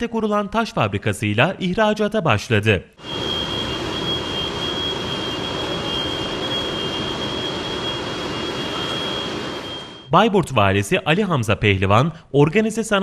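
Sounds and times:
factory machinery noise: 3.0 - 10.2
thin high whine: 3.0 - 10.2.

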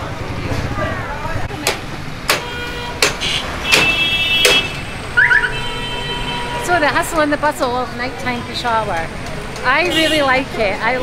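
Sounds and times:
city street traffic: 0.0 - 11.0
sharp knocks: 1.6 - 4.8
vehicle horn: 2.4 - 6.8, 9.9 - 10.3.

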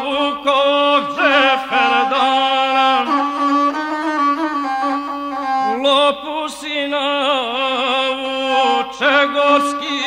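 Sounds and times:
bowed single-string fiddle: 0.0 - 10.0.

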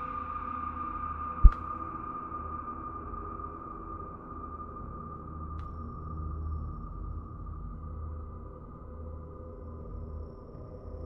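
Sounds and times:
sharp low thump: 1.4 - 1.6.

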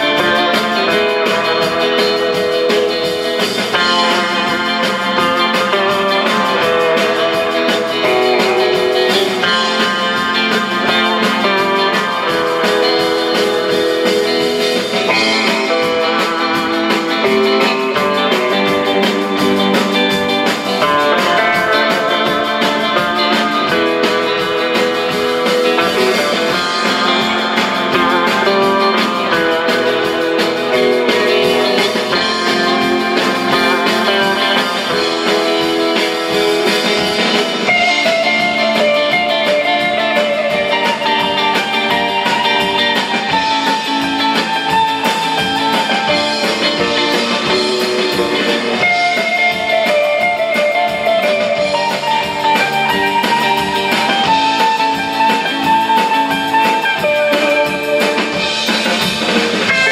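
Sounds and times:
bass guitar: 0.0 - 59.9
drums: 0.0 - 59.9
electric guitar lead melody: 0.0 - 59.9
rhythm guitar: 0.0 - 59.9.

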